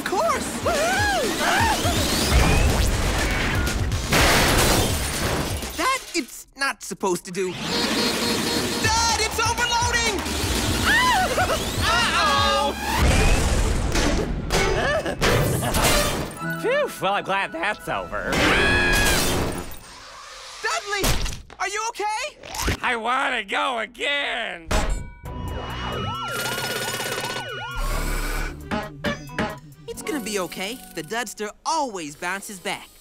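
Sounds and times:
cartoon cannon blast: 0:01.7 - 0:05.5, 0:12.9 - 0:16.3
music: 0:08.8 - 0:13.9, 0:14.5 - 0:19.1, 0:25.1 - 0:31.4
cartoon siren wailing: 0:10.8 - 0:13.5, 0:18.4 - 0:19.2, 0:25.4 - 0:29.4.

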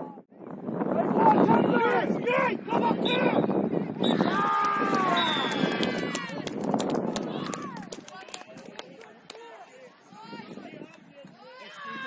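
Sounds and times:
spectators shouting and cheering: 0:00.9 - 0:12.0
hand claps: 0:04.6 - 0:09.5.

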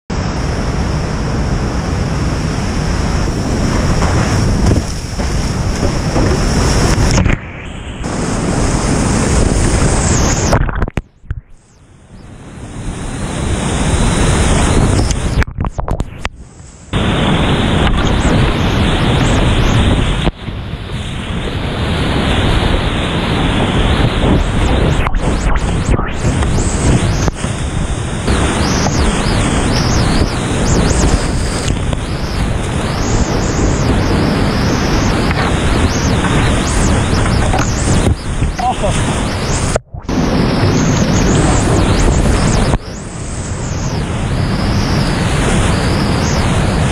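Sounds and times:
wind on microphone: 0:00.1 - 0:46.9
water splashing over boat: 0:02.2 - 0:10.9.

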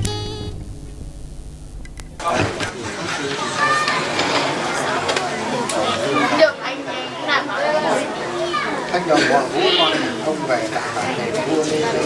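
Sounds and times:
people chattering: 0:02.2 - 0:12.0.

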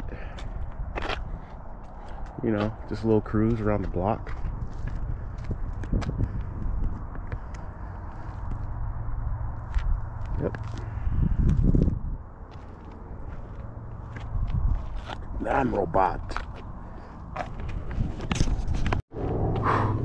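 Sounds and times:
steady low rumble: 0:00.0 - 0:20.0
footsteps on pavement: 0:00.1 - 0:19.0.

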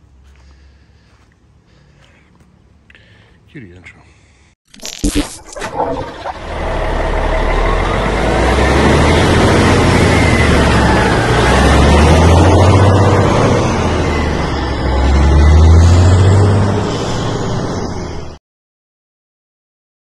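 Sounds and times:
vehicle engine rumble: 0:00.0 - 0:03.6, 0:05.7 - 0:18.4.

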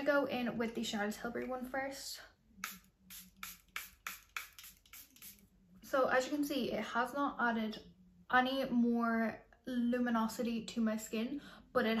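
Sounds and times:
spray bottle mist hisses: 0:02.6 - 0:05.4.

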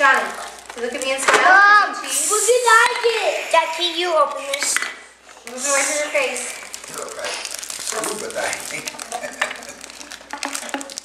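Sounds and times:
packaging clicks and rustles: 0:06.5 - 0:11.0.

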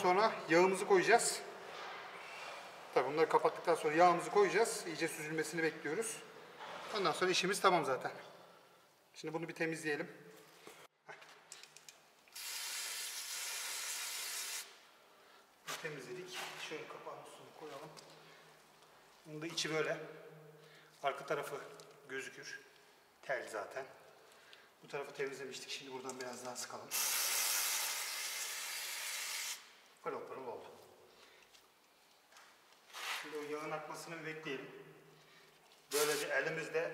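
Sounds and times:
aerosol spray hissing: 0:12.4 - 0:14.8, 0:26.9 - 0:29.7.

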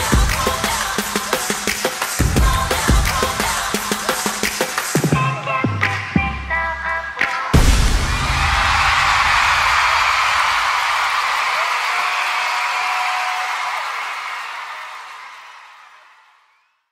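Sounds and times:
arena crowd cheering and screaming: 0:07.5 - 0:16.9.

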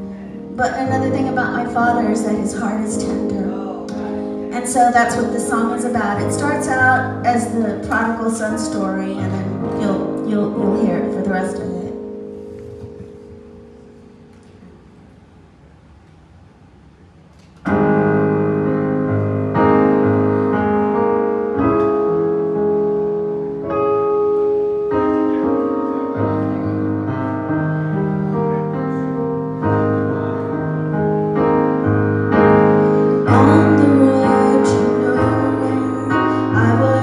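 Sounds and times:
keyboard playing piano chords: 0:00.0 - 0:15.3, 0:17.6 - 0:37.0.

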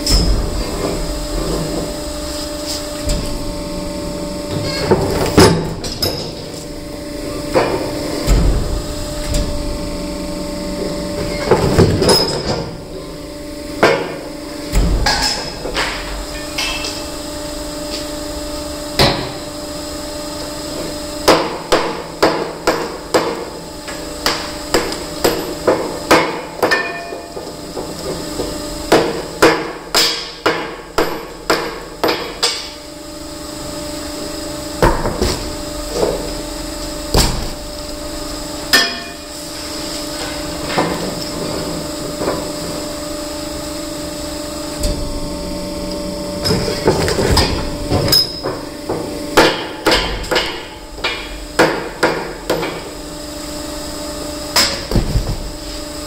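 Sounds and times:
hydraulic stone splitter hum: 0:41.9 - 0:53.4.

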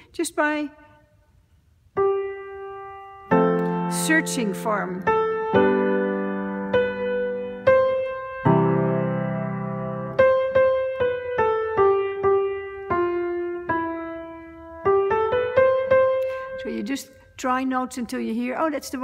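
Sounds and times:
low piano chords: 0:01.8 - 0:17.3
piano melody: 0:01.9 - 0:17.1.

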